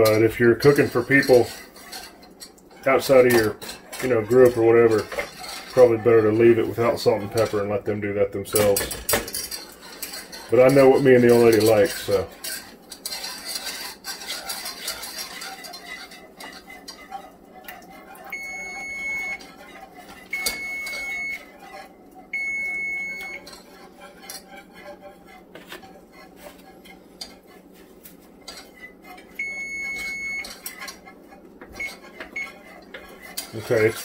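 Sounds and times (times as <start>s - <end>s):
metal whisk scraping saucepan: 0.0s - 34.0s
electronic timer beeps: 18.3s - 19.4s, 20.3s - 21.4s, 22.4s - 23.4s, 29.4s - 30.5s.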